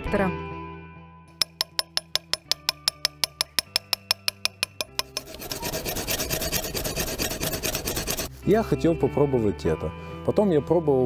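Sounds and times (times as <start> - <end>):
hand rasp scraping stone: 1.4 - 8.3
quick even ticking: 1.4 - 8.3.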